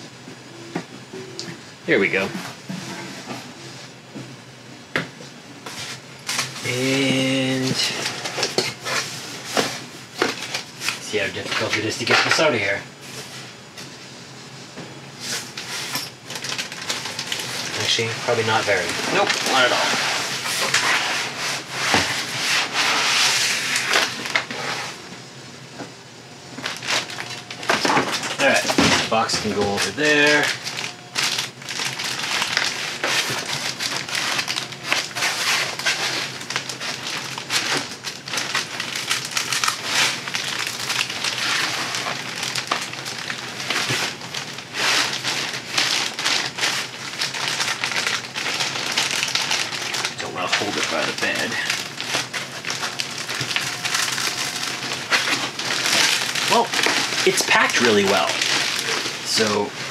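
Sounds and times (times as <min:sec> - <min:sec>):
plastic bag crinkling: 0:15.3 - 0:21.1, 0:26.6 - 0:59.9.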